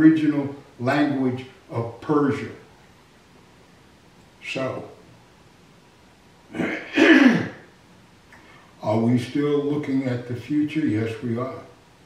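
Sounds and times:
man clearing his throat: 6.5 - 7.7.

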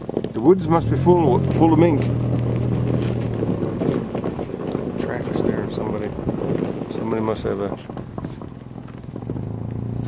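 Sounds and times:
road and wind noise: 0.0 - 10.0
vehicle engine humming: 0.0 - 10.0.

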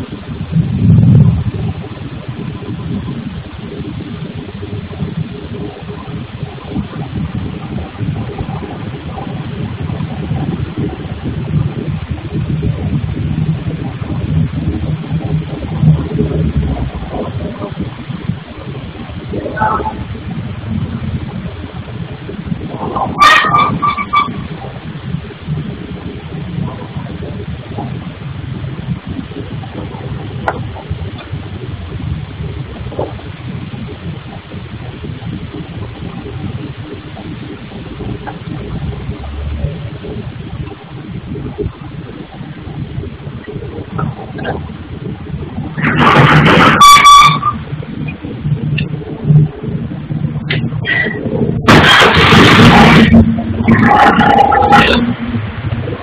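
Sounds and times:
low machinery rumble: 0.0 - 56.0
loud burst of noise: 42.6 - 56.0.

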